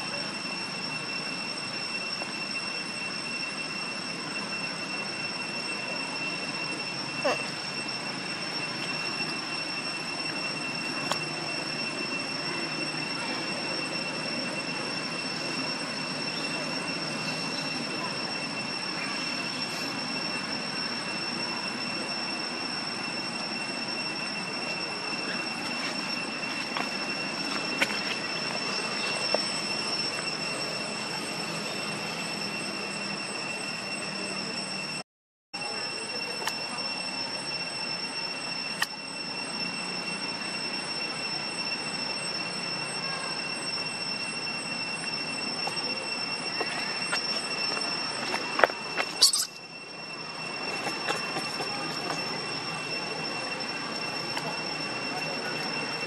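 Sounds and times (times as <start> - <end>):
high-pitched whining drone: 0.0 - 56.0.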